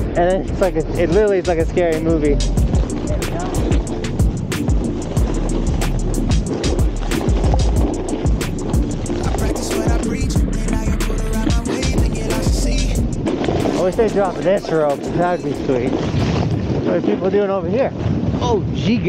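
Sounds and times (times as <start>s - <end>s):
low rumble: 0.0s - 16.9s.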